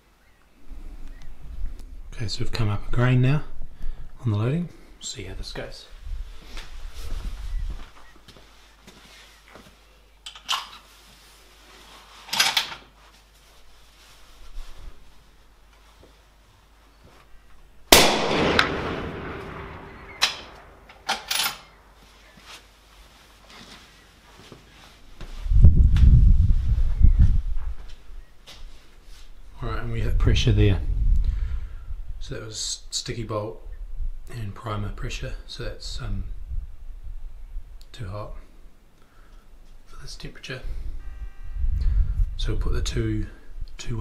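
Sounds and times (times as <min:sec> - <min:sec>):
rifle shot: 0:17.9 - 0:20.9.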